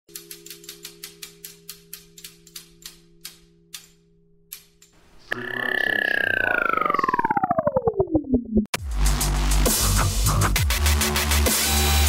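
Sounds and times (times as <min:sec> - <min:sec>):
falling-pitch power-down tone: 0:05.2 - 0:08.7
clicks slowing down: 0:05.2 - 0:08.8.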